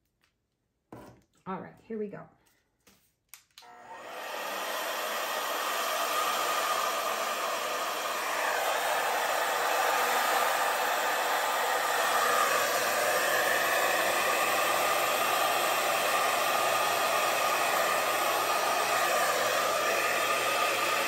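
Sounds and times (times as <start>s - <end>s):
hair dryer blowing: 3.6s - 21.0s.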